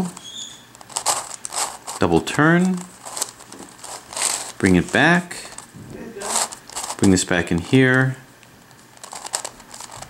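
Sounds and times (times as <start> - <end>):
plastic puzzle clicking and scraping: 0.0 - 10.0.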